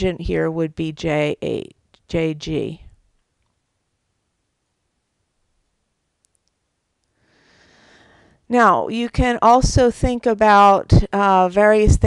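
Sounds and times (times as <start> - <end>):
person speaking: 0.0 - 3.0, 8.5 - 12.0.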